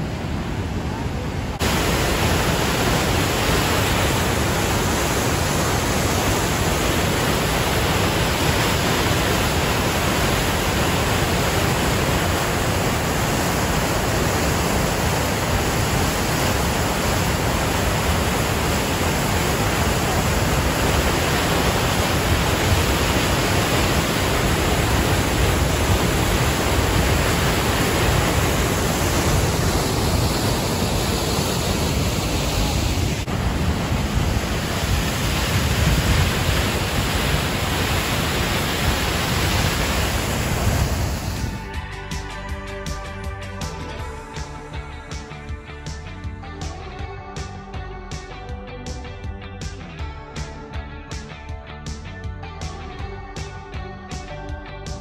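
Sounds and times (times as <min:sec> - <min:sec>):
waterfall rushing: 0:00.0 - 0:41.8.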